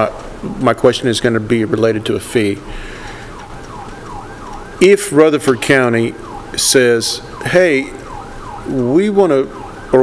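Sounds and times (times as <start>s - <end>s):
faint emergency siren: 2.1s - 10.0s.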